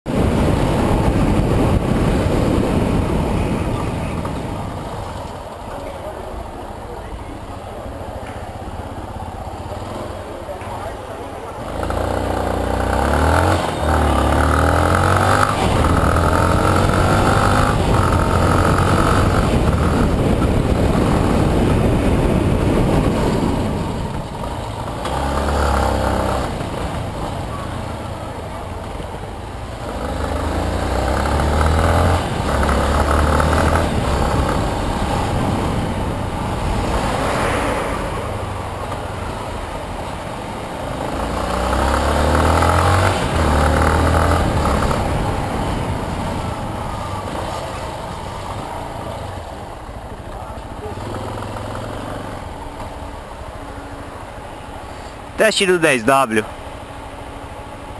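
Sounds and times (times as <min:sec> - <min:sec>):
wind rushing over microphone: 0:00.1 - 0:05.4, 0:14.7 - 0:24.8
motorcycle engine accelerating: 0:08.6 - 0:39.9, 0:40.8 - 0:55.2.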